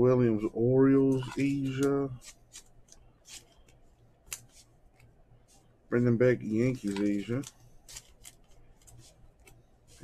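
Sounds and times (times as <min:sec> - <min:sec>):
faint low hum: 0:00.0 - 0:10.0
cards rustling and clicking: 0:01.0 - 0:05.1, 0:06.4 - 0:10.0.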